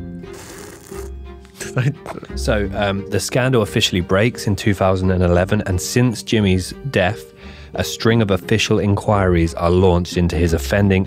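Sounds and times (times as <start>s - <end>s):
background music with plucked bass: 0.0s - 11.0s
slurping through a straw: 0.2s - 1.6s.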